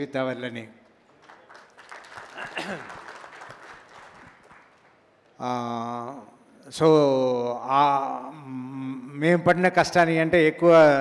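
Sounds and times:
audience applause: 1.1 - 5.0.

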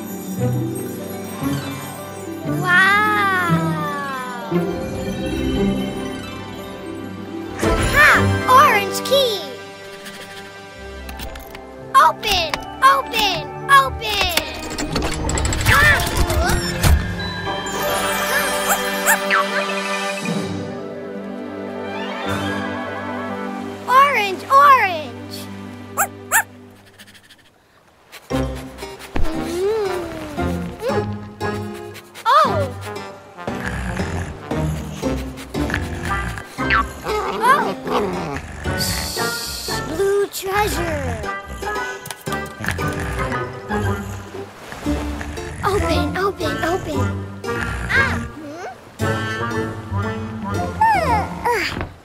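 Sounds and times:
music: 0.0 - 26.8, 28.3 - 52.0.

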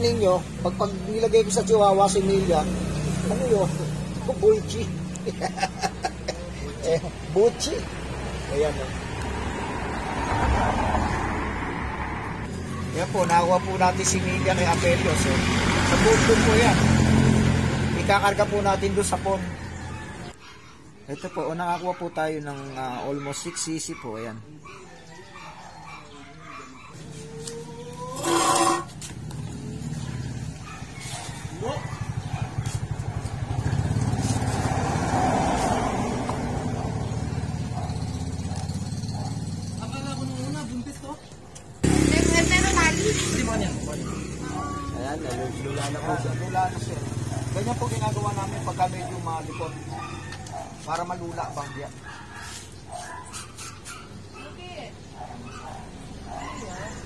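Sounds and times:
dog yipping: 12.4 - 14.7, 19.6 - 34.8, 36.6 - 39.8, 43.4 - 57.0
dog whining: 22.9 - 29.0, 44.0 - 46.8
small motorcycle engine running: 41.8 - 45.3.

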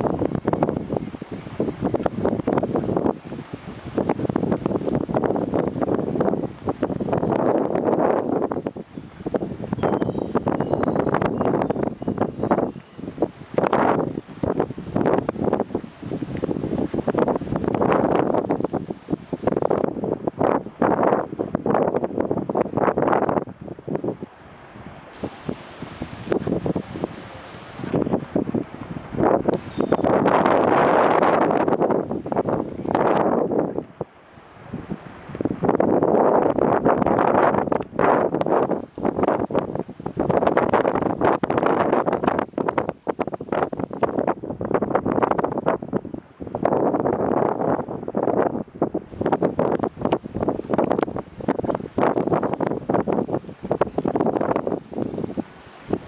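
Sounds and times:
wind buffeting microphone: 0.0 - 56.0.

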